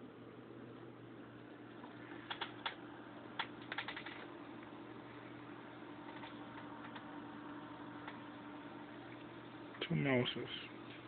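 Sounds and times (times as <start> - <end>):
keyboard keys clicking: 2.2 - 2.8, 3.4 - 4.3.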